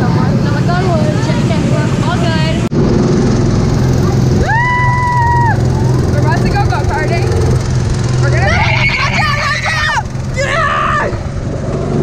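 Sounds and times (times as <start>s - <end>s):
go-kart engine droning: 0.0s - 12.0s
rider whooping: 4.0s - 6.5s, 8.3s - 11.4s.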